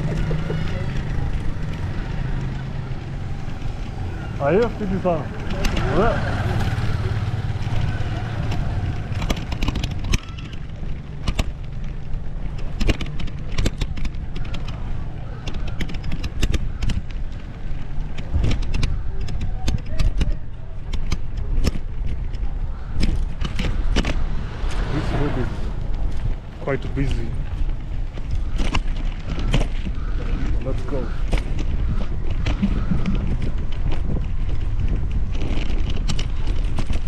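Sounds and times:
bike clicks and knocks: 0.0s - 25.0s, 25.7s - 37.0s
wind on microphone: 16.2s - 37.0s.

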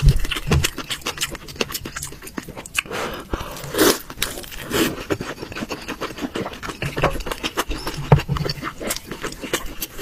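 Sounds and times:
person chewing meat: 0.0s - 10.0s.

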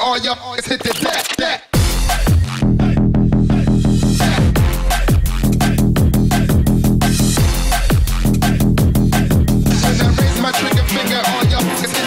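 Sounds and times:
rapping over a beat: 0.0s - 6.6s, 9.1s - 12.0s
drum and bass music: 0.7s - 12.0s.

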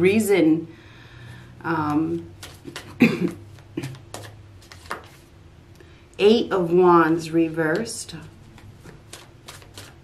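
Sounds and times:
cards sliding swishes: 2.3s - 5.3s, 8.6s - 10.0s.

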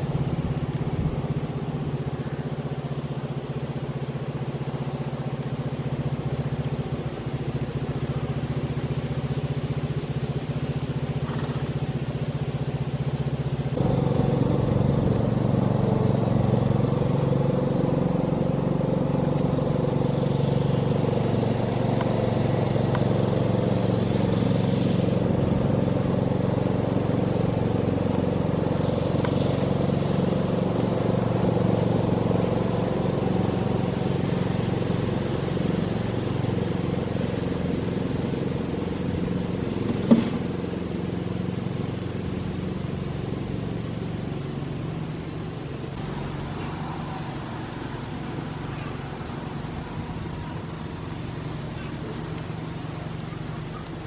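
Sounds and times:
engine running: 0.0s - 54.0s
sharp knock: 40.1s - 40.4s.

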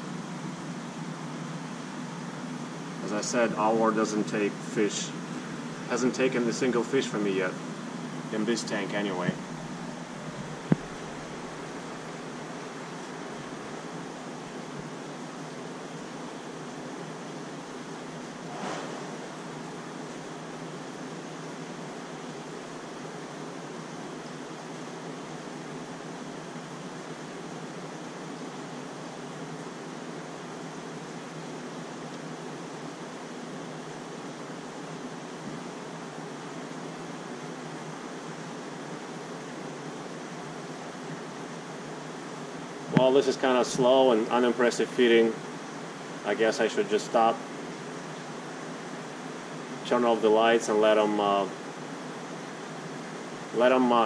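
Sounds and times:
aeration equipment hum: 0.0s - 54.0s
faint swish: 18.5s - 19.2s.

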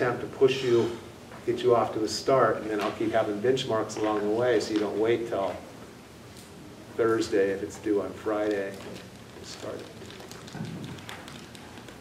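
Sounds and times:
faint taps and clicks: 8.4s - 12.0s.

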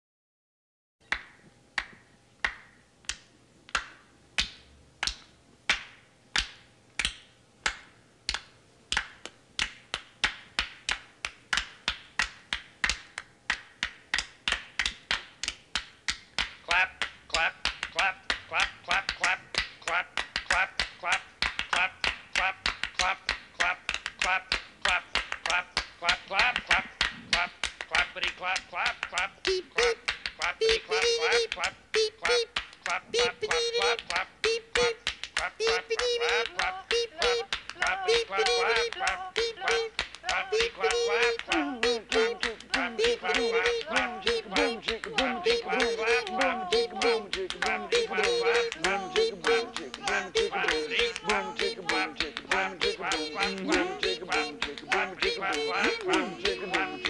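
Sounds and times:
sharp claps or snaps: 1.1s - 57.0s.

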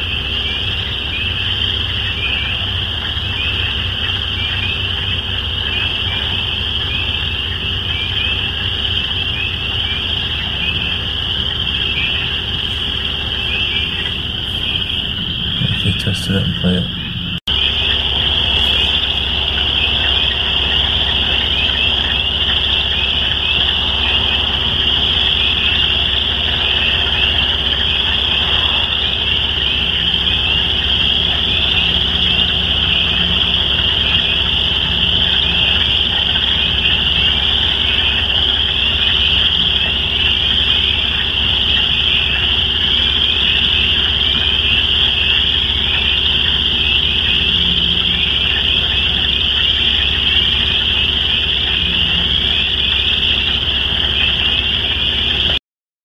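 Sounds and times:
chorus of frogs calling: 0.0s - 55.6s
faint low hum: 0.0s - 55.6s.

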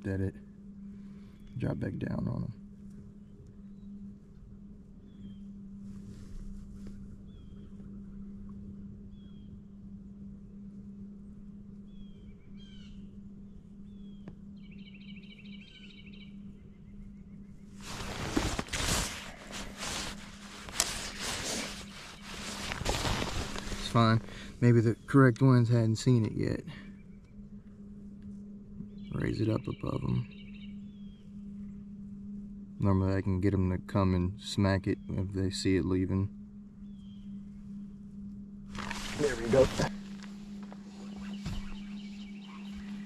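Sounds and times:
steady low hum: 0.0s - 43.0s
bird trill: 5.0s - 5.6s, 11.9s - 18.3s, 28.8s - 32.9s, 36.6s - 38.0s, 38.8s - 43.0s
birds chirping: 11.8s - 27.8s, 28.8s - 38.0s, 38.7s - 43.0s.

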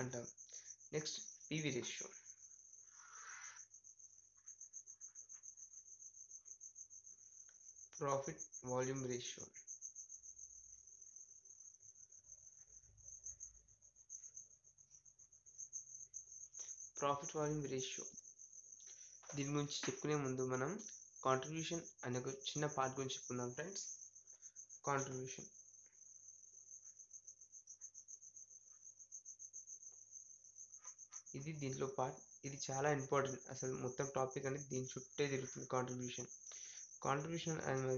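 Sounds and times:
crickets chirping: 0.0s - 37.9s
insect trill: 0.0s - 37.9s.

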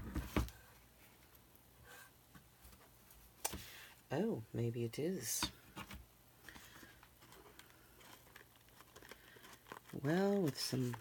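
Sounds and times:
cardstock rustling and tapping: 5.7s - 11.0s.

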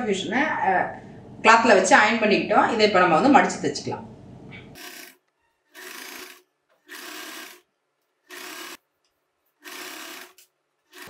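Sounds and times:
sewing machine stitching: 4.8s - 7.6s, 8.3s - 8.8s, 9.6s - 11.0s.

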